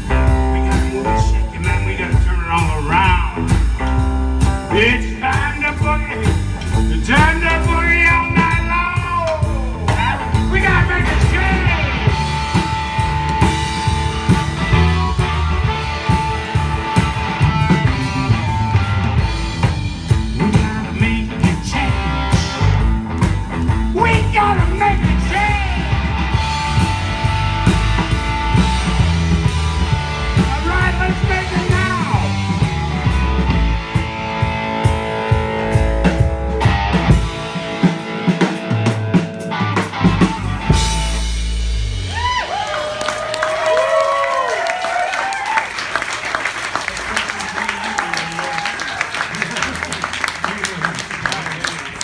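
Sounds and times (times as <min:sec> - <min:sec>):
electric guitars: 0:00.0 - 0:45.6
drum kit: 0:00.0 - 0:52.0.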